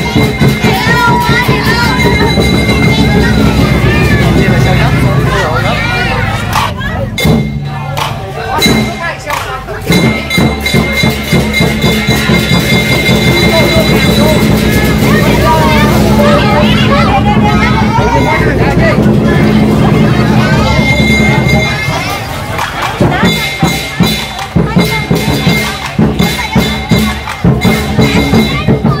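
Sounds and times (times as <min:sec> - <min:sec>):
crowd voices: 0:00.0 - 0:29.0
cymbals crashing fast: 0:00.0 - 0:29.0
lion dance drum beating: 0:00.0 - 0:29.0.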